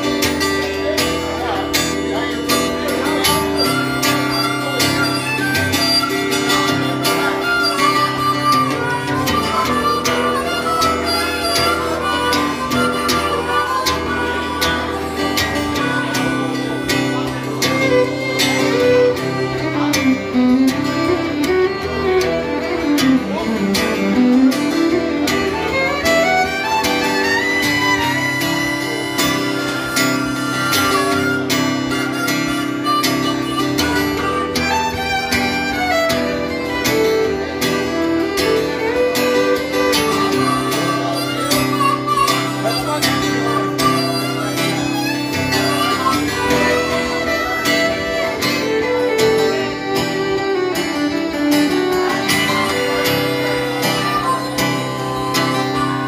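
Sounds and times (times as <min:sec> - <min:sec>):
fiddle: 0:00.0 - 0:56.0
harmonica: 0:00.0 - 0:56.0
strummed acoustic guitar: 0:00.0 - 0:56.0.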